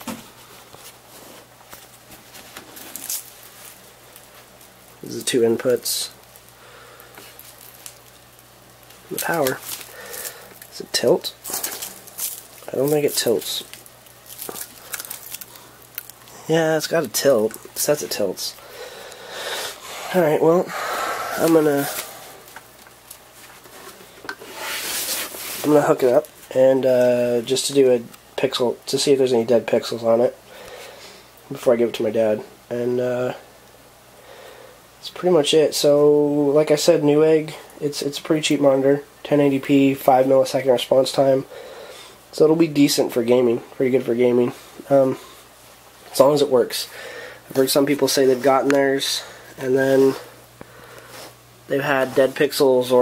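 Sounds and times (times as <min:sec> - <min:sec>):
low steady hiss: 0:00.0 - 0:53.0
plastic monitor handling rustle: 0:08.8 - 0:18.4.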